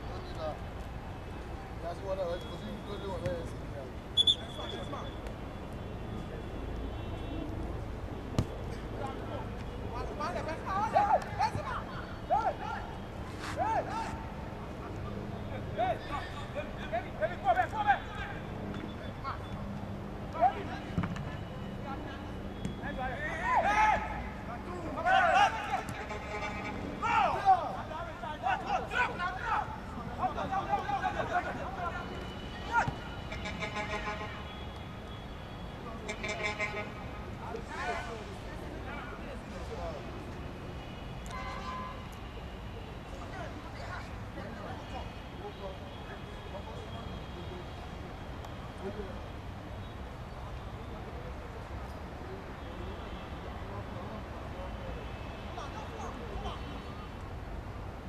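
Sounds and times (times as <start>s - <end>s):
players shouting and calling: 0.0s - 51.1s, 52.4s - 57.6s.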